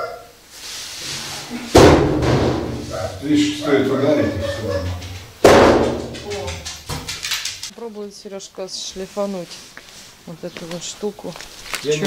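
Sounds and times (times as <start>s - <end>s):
heavy thump: 1.7s - 2.9s, 5.4s - 6.2s.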